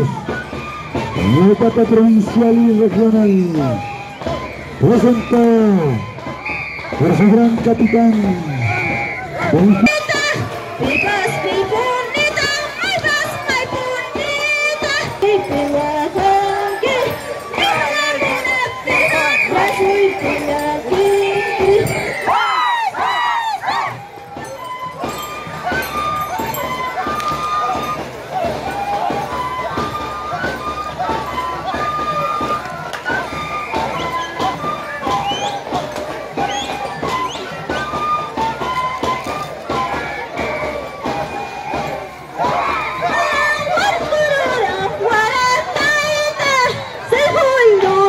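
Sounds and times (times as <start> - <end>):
hand drum beats: 0.0 - 48.0
voices making gliding calls: 0.0 - 48.0
high melody: 23.8 - 44.6.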